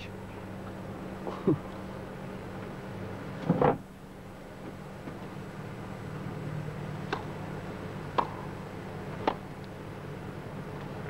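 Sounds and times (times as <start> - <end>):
steady low hum: 0.0 - 11.0
tennis court ambience: 6.9 - 9.8.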